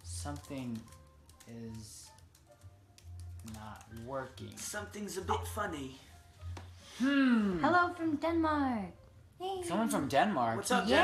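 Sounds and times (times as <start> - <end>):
laptop keyboard clicks: 0.2 - 4.6.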